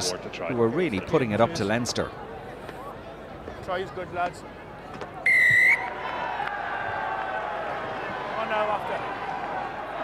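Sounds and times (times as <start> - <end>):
stadium crowd noise: 0.0 - 10.0
referee's whistle blast: 5.3 - 5.9.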